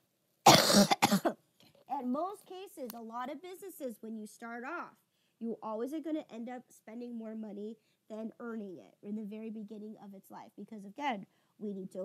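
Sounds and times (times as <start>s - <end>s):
woman coughing: 0.5s - 1.4s.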